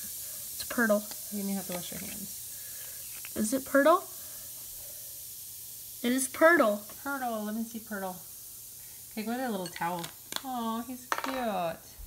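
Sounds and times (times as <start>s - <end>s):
tablet fizzing in water: 0.0s - 11.1s.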